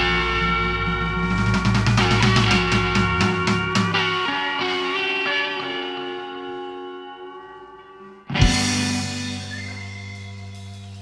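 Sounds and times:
blues band closing chord: 0.0 - 11.0
electric guitar sustained notes: 0.0 - 11.0
keyboard sustained notes: 0.0 - 11.0.

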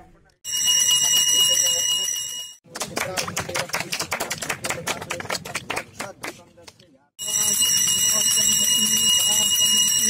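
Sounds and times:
people's voices: 2.7 - 10.0.

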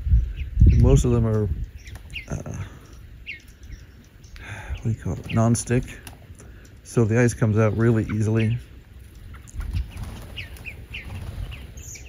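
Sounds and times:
bluebirds chirping: 0.0 - 12.0.

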